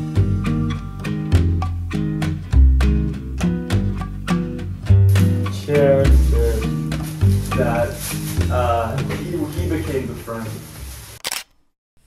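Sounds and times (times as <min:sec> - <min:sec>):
people talking: 0:05.5 - 0:06.7, 0:07.5 - 0:10.6
sharp click: 0:11.2 - 0:11.6.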